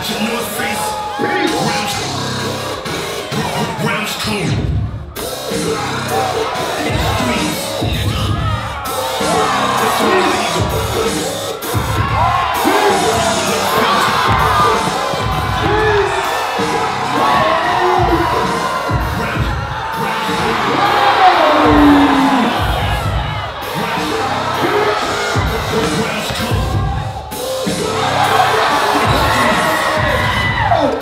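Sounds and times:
loud dance music: 0:00.0 - 0:31.0
crowd cheering and whooping: 0:00.2 - 0:04.4, 0:05.2 - 0:31.0.

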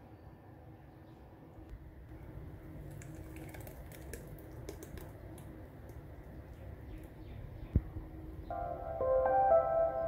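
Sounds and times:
thick chutney pouring into bowl: 0:02.9 - 0:05.4.

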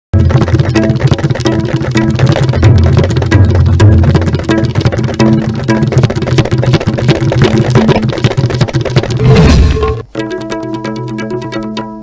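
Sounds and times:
fast driving percussion beat: 0:00.1 - 0:12.0.

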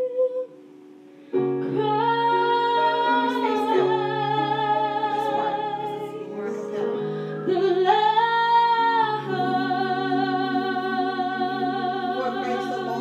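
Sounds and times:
instrumental backing music: 0:00.0 - 0:13.0
woman singing through speaker: 0:01.7 - 0:13.0.

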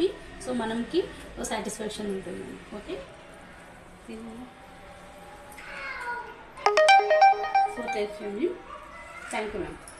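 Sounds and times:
electronic ringtone melody: 0:06.7 - 0:08.4.

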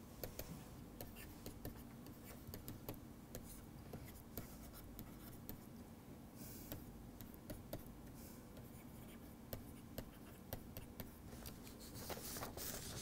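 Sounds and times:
low room hum: 0:00.0 - 0:13.0.

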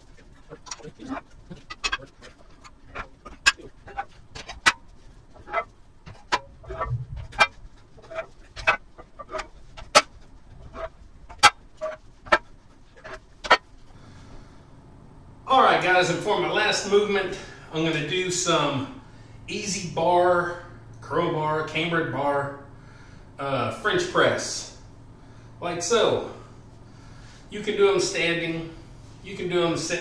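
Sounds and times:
weight plates clanking: 0:00.0 - 0:13.7.

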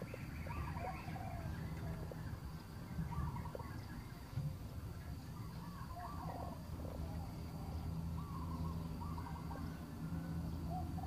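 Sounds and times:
low wind rumble: 0:00.0 - 0:11.0.

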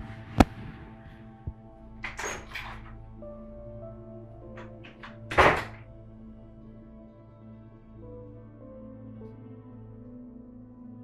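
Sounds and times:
soft background music: 0:00.0 - 0:11.0
door latch click: 0:02.0 - 0:03.0, 0:04.6 - 0:05.8
door closing thud: 0:04.6 - 0:05.9.

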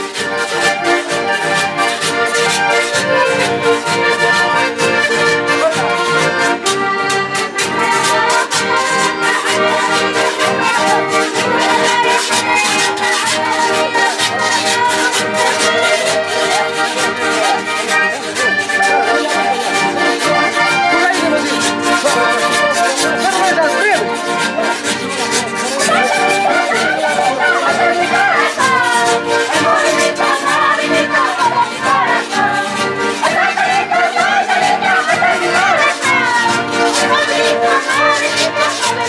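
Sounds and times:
crowd voices: 0:00.0 - 0:39.0
festive dance band music: 0:00.0 - 0:39.0.

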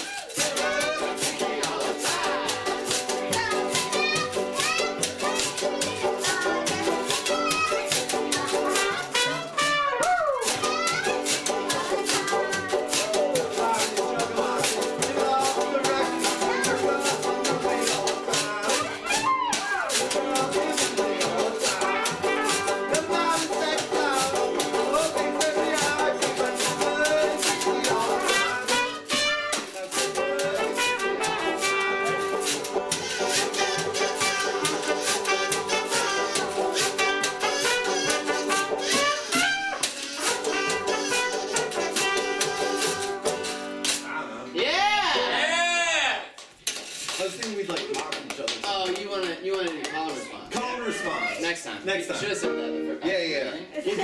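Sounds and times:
banjo strumming: 0:00.1 - 0:44.5
trumpet playing: 0:06.6 - 0:13.0, 0:15.4 - 0:44.1.

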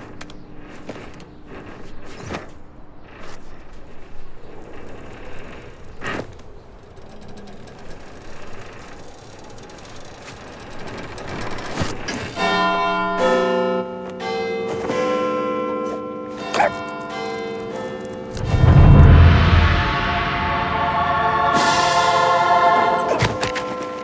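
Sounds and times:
clock bells chiming: 0:12.2 - 0:18.4
loud low boom: 0:18.4 - 0:22.1.

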